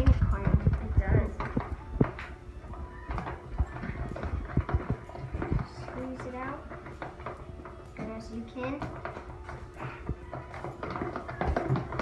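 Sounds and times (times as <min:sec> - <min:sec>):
spoons knocking plastic tubs: 0:00.0 - 0:12.0
spoons stirring thick glue: 0:00.0 - 0:12.0.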